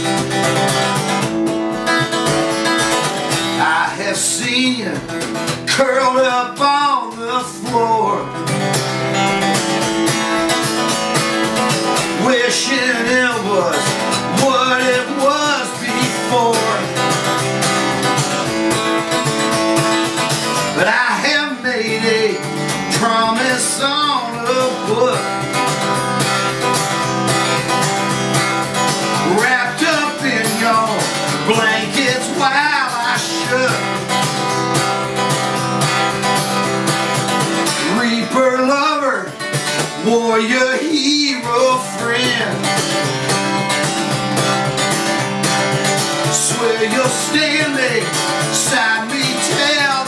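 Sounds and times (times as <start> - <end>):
acoustic guitar strummed: 0.0 - 50.0
wordless vocal phrases: 3.6 - 5.1.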